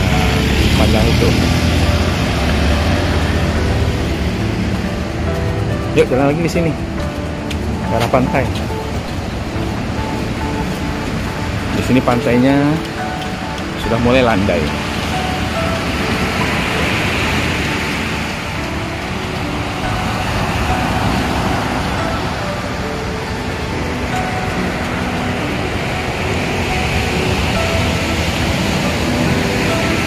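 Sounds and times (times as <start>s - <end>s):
surf breaking on a beach: 0.0s - 30.0s.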